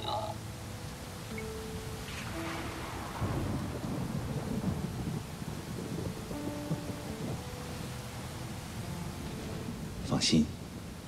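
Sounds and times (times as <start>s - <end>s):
steady rain: 0.0s - 11.0s
thunder rumble: 0.0s - 11.0s.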